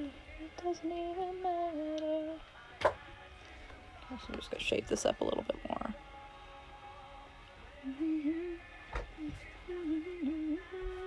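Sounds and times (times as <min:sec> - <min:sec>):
woman humming a tune: 0:07.8 - 0:08.6, 0:09.2 - 0:11.0.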